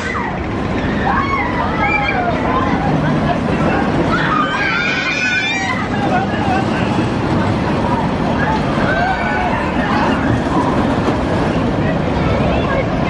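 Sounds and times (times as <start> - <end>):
roller coaster rumbling on track: 0.0 - 13.0.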